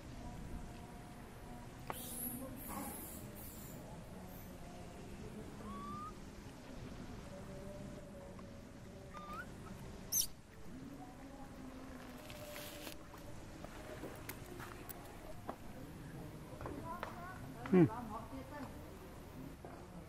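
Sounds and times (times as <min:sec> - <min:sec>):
baby monkey squealing: 0:05.6 - 0:06.2, 0:09.1 - 0:10.4.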